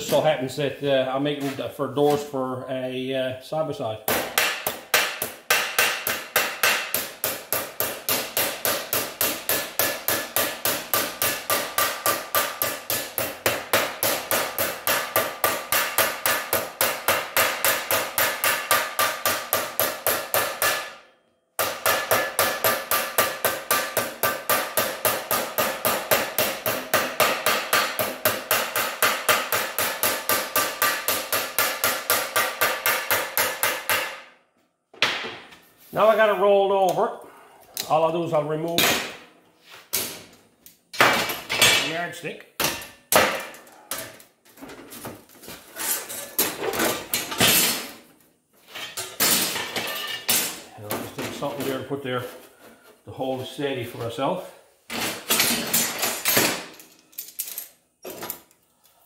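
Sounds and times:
hammer beating sheet steel: 0:04.0 - 0:34.4.

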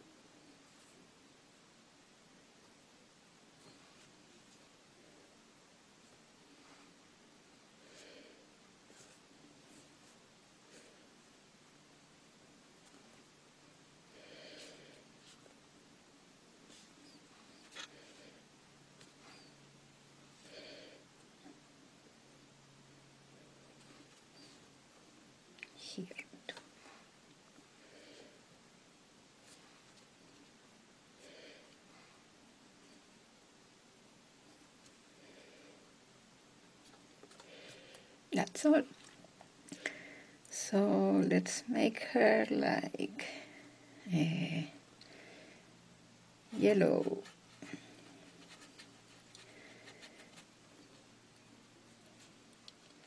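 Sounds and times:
woman speaking softly: 0:25.6 - 0:26.6, 0:38.4 - 0:39.0, 0:40.5 - 0:44.8, 0:46.5 - 0:47.3
brush tapping and scraping paint: 0:46.6 - 0:51.4.

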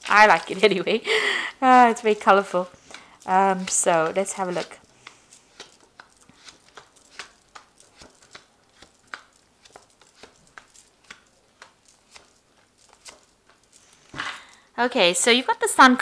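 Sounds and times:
cards dealt onto cloth table: 0:02.7 - 0:14.3.

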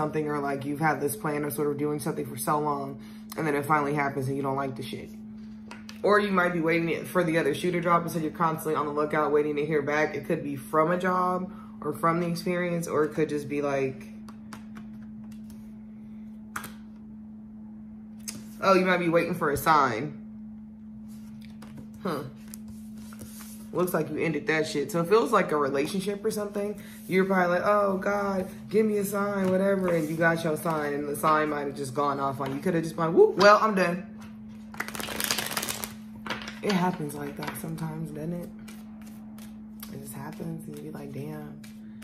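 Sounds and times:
low hum: 0:00.0 - 0:42.0
cards being shuffled: 0:14.3 - 0:15.7, 0:21.1 - 0:23.7, 0:34.2 - 0:36.6, 0:38.5 - 0:40.9
cards clicking and snapping: 0:16.5 - 0:16.8, 0:34.7 - 0:36.0.

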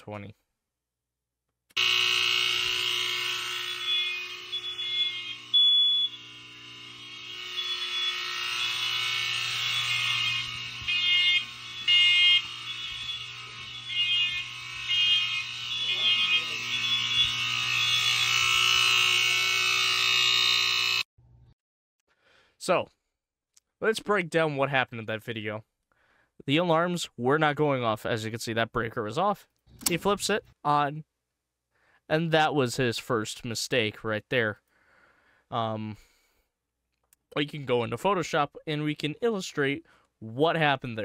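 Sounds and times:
low electrical buzz: 0:01.8 - 0:21.0
smoke alarms beeping: 0:01.8 - 0:21.0.

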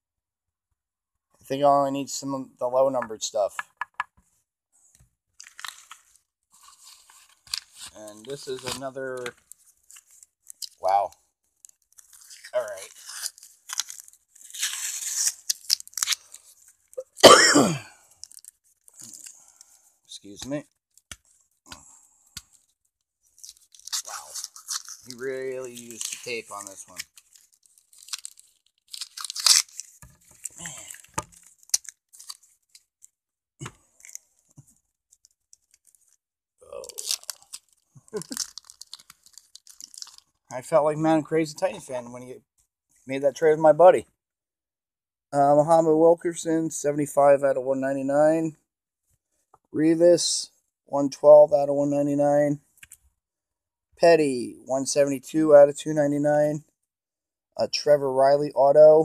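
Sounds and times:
paper packaging crinkling: 0:05.4 - 0:16.9, 0:18.1 - 0:19.8, 0:23.3 - 0:34.4, 0:35.1 - 0:40.4.

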